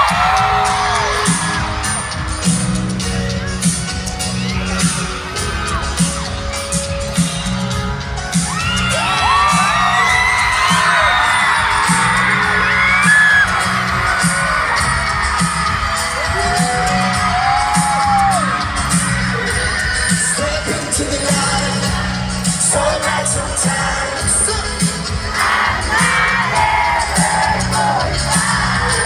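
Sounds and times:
fans screaming and whooping: 0:00.0 - 0:29.0
live pop band over pa: 0:00.0 - 0:29.0.

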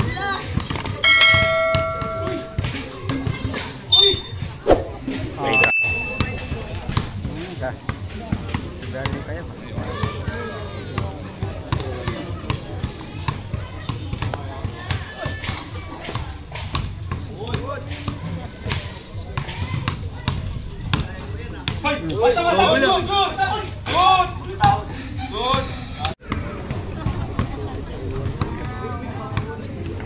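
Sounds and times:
spectators chattering: 0:00.0 - 0:30.0.

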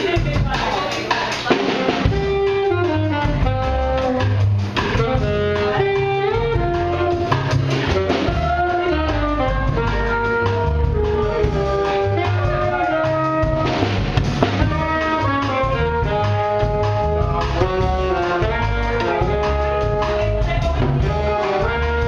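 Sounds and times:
drum kit with cymbals: 0:00.0 - 0:22.0
plucked upright bass: 0:00.0 - 0:22.0
trumpet melody: 0:01.5 - 0:22.0.

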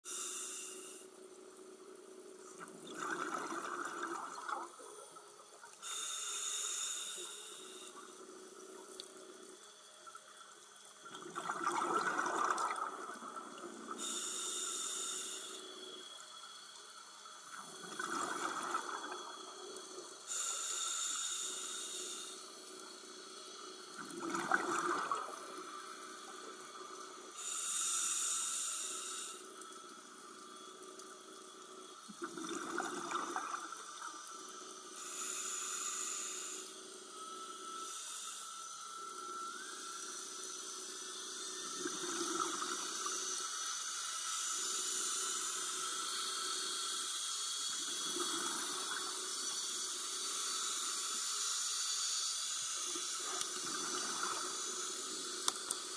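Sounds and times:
regulator air hiss: 0:00.0 - 0:01.1, 0:05.8 - 0:08.0, 0:14.0 - 0:17.6, 0:19.1 - 0:24.0, 0:25.5 - 0:32.1, 0:34.0 - 0:55.9
exhaled bubbles gurgling underwater: 0:02.6 - 0:05.8, 0:11.1 - 0:15.2, 0:17.5 - 0:20.8, 0:23.9 - 0:28.4, 0:32.1 - 0:34.2, 0:41.6 - 0:43.2, 0:47.7 - 0:49.3, 0:52.9 - 0:55.9.

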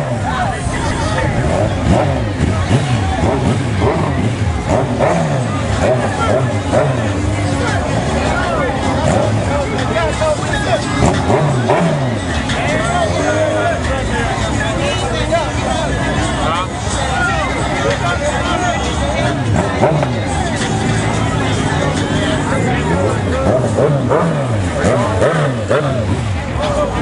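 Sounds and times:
engine revving: 0:00.0 - 0:13.9, 0:15.5 - 0:27.0
crowd chatter: 0:00.0 - 0:27.0
engines idling: 0:00.0 - 0:27.0.

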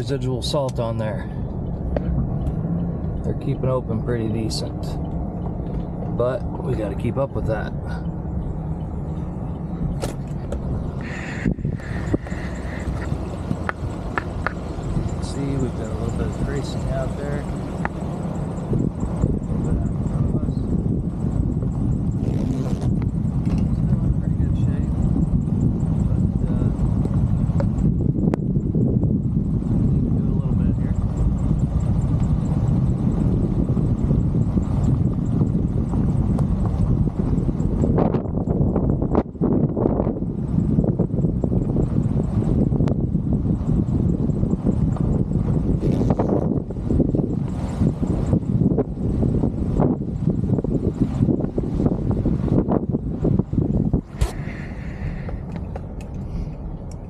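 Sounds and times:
truck driving slowly: 0:00.0 - 0:57.0
wind buffeting microphone: 0:00.0 - 0:57.0.

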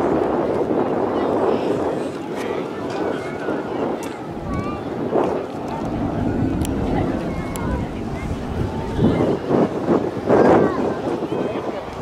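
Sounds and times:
wind on microphone: 0:00.0 - 0:12.0
jet aircraft roaring: 0:03.1 - 0:12.0.

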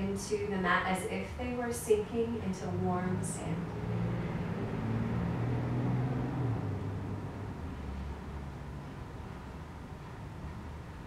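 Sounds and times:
low mechanical rumble and hum: 0:00.0 - 0:11.0.

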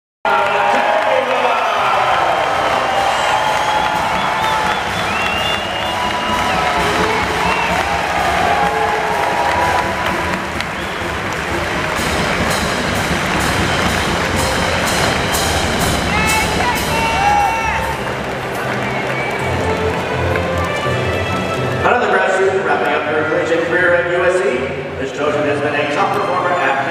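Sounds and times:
crowd applauding and cheering: 0:00.3 - 0:24.3
music playing: 0:00.3 - 0:26.9
sharp hand claps: 0:00.4 - 0:21.8.

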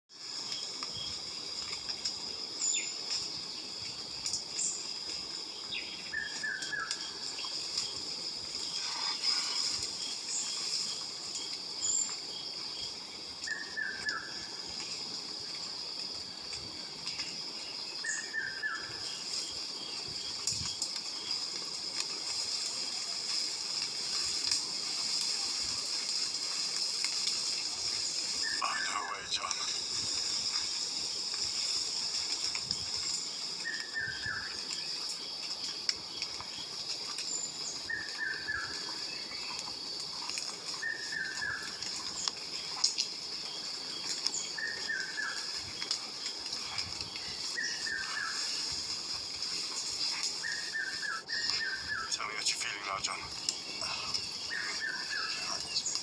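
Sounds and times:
high insect drone: 0:00.1 - 0:56.0.

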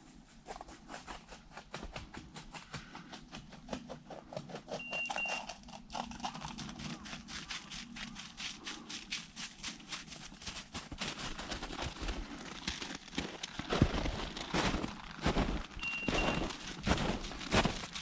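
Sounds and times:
footsteps crunching through snow: 0:07.0 - 0:18.0.

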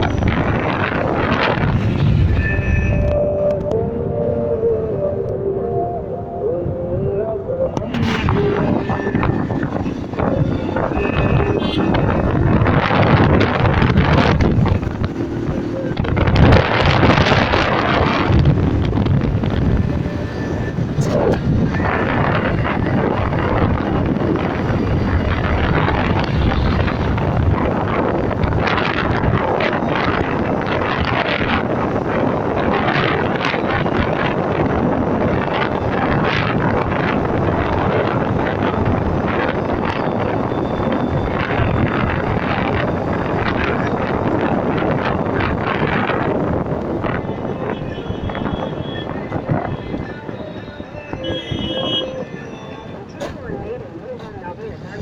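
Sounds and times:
motorbike vehicle noise: 0:00.0 - 0:55.0
wind rushing over microphone: 0:00.0 - 0:55.0.

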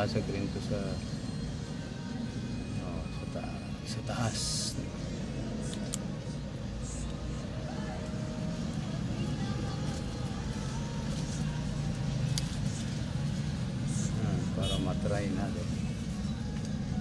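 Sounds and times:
motor vehicle rumble: 0:00.0 - 0:17.0.

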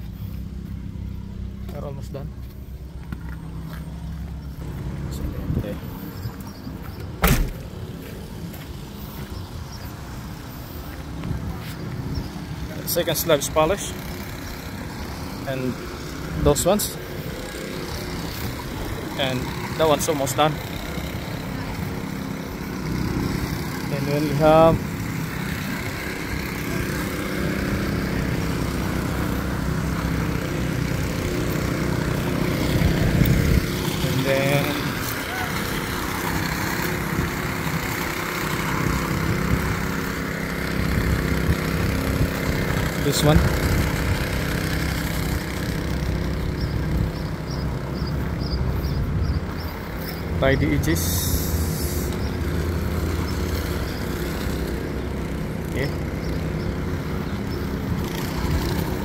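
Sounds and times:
power trowel engine humming: 0:07.8 - 0:59.0.

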